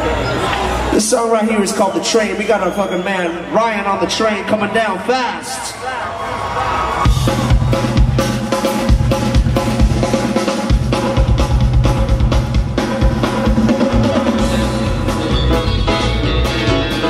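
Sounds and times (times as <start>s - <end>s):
drum kit beat: 7.0s - 17.0s
live rock band playing: 7.0s - 17.0s.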